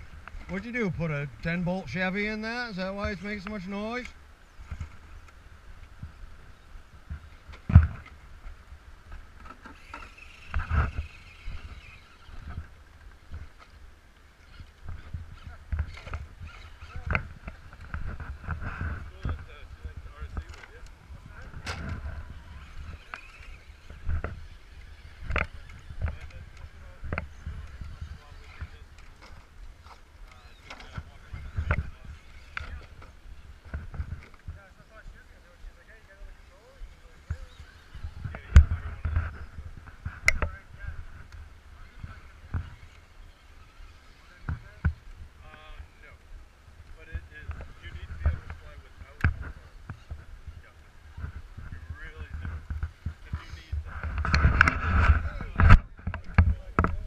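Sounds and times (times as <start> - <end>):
electric motor and gears whining: 0.0 - 57.0.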